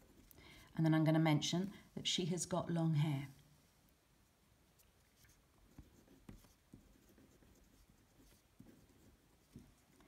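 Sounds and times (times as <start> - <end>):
pen scratching on paper: 4.8 - 10.0.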